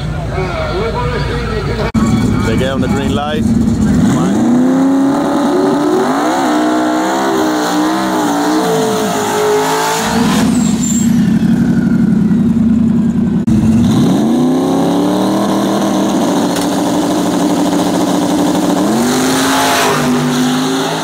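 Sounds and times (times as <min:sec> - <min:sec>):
drag car engines revving: 0:00.0 - 0:21.0.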